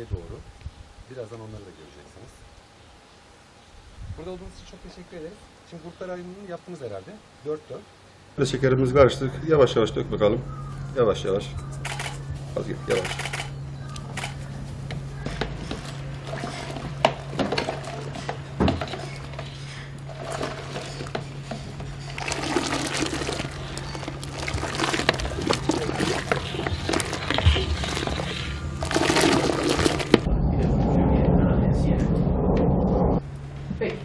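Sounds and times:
steady low hum: 0.0s - 34.0s
liquid pouring into pot: 22.0s - 30.3s
low rumble: 22.1s - 33.9s.

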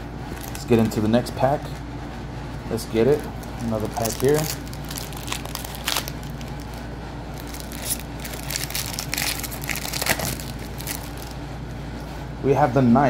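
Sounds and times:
steady low hum: 0.0s - 13.0s
foil wrapper tearing and crinkling: 0.3s - 1.0s, 3.3s - 11.4s.

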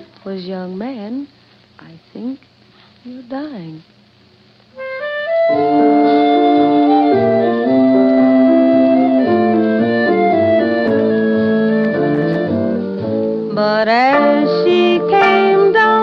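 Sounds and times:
clarinet led woodwinds playing chords: 4.8s - 12.7s, 14.1s - 16.0s.

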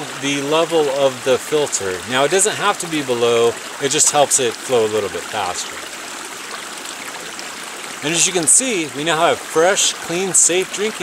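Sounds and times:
running water: 0.0s - 11.0s.

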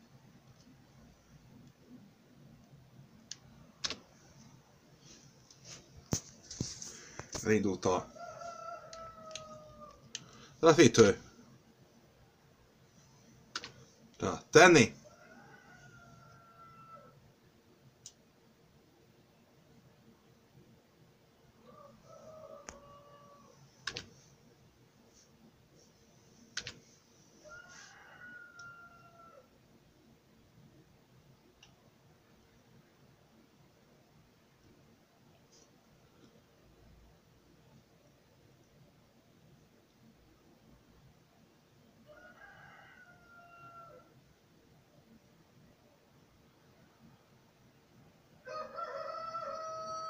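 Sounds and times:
faint room hiss: 0.0s - 50.0s
keyboard keys clicking: 3.8s - 4.0s, 13.6s - 13.8s, 23.8s - 24.1s.

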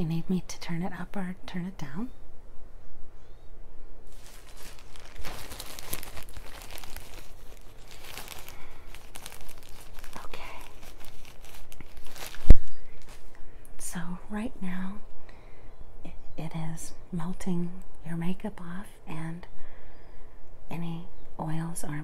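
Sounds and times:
crinkling handling noise: 4.0s - 13.4s.

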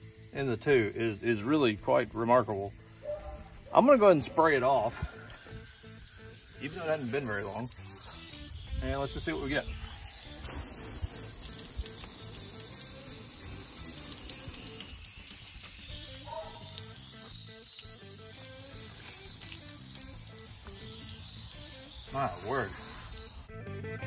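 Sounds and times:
hose water spray hissing: 0.0s - 23.5s
background music: 0.0s - 24.0s.

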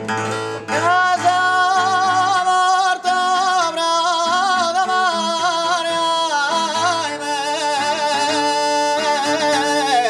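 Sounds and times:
acoustic guitar strumming chords: 0.0s - 10.0s
man singing high note: 0.7s - 10.0s.

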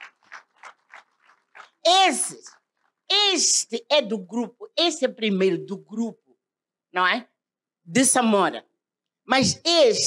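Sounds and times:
audience hand claps: 0.0s - 3.1s
woman speaking into microphone: 1.8s - 6.2s, 6.9s - 8.7s, 9.3s - 10.0s.

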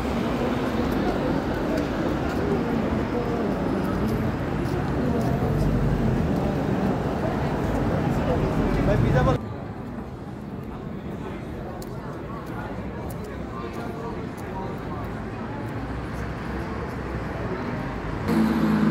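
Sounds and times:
people talking: 0.0s - 18.9s
street noise: 0.0s - 18.9s.

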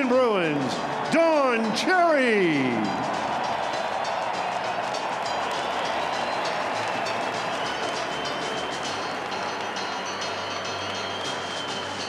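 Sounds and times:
crowd cheering and applauding: 0.0s - 12.0s.

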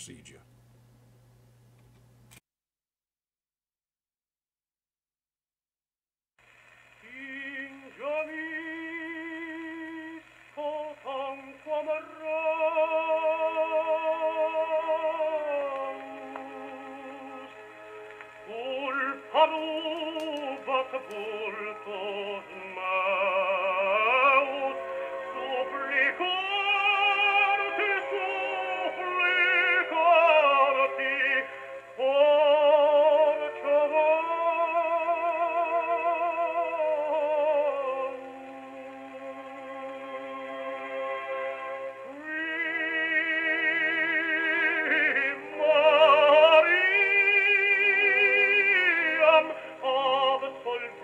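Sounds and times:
tenor singing operatic aria: 7.0s - 51.0s.

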